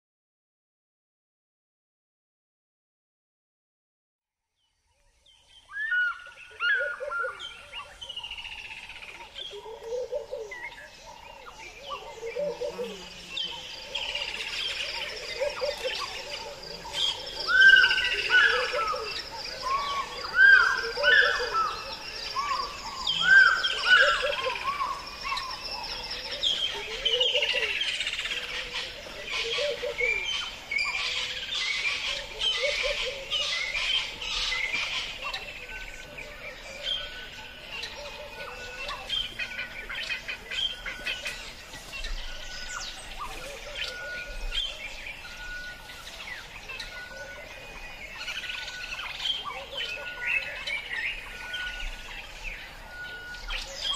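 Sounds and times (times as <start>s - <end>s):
birds chirping and trilling: 4.5s - 53.9s.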